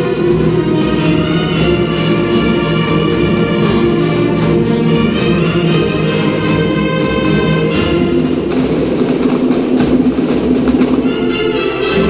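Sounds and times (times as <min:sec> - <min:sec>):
marching band drum roll: 0:00.0 - 0:12.0
steady low note: 0:00.0 - 0:12.0.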